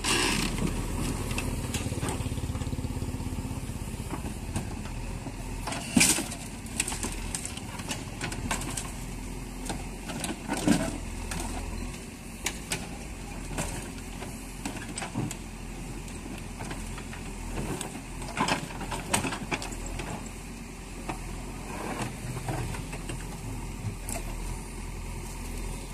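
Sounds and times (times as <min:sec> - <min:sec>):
diesel engine running: 0:00.0 - 0:25.9.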